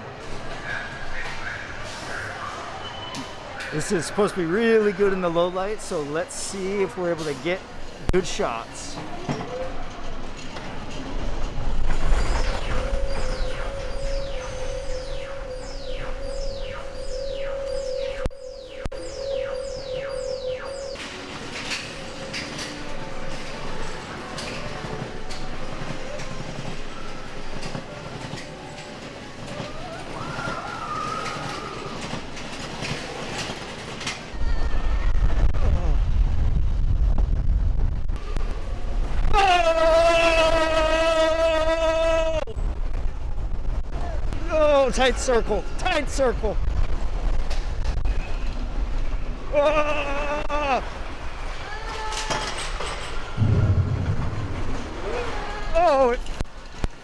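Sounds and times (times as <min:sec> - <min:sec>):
roller coaster car rumbling on track: 0:00.0 - 0:57.0
wavering high tone: 0:12.4 - 0:21.9
electronic hum with falling sweeps: 0:12.6 - 0:21.0.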